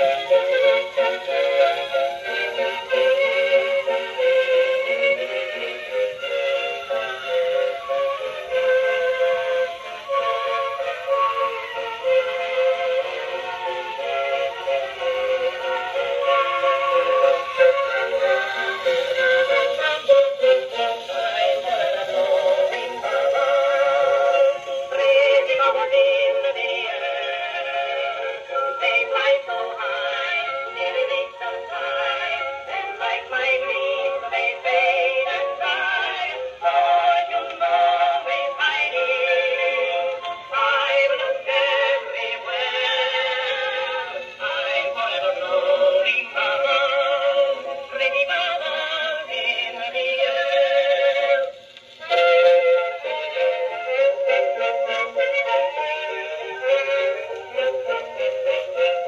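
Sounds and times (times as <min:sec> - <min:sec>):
phonograph playing song with singing: 0:00.0 - 0:59.0.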